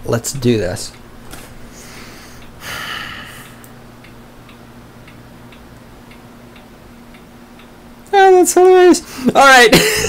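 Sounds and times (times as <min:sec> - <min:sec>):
steady low hum: 0:00.0 - 0:10.0
faint even ticking: 0:00.7 - 0:08.1.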